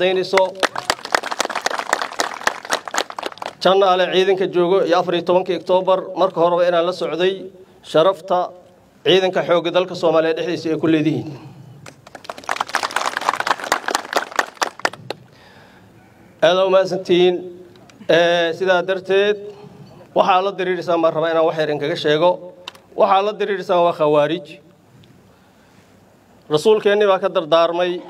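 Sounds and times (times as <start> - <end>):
group of people clapping: 0.0 - 3.7, 11.8 - 15.4.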